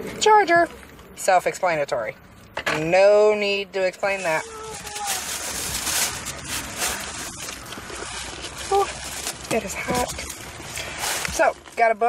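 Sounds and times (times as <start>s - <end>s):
shopping bag rustling: 4.0s - 12.0s.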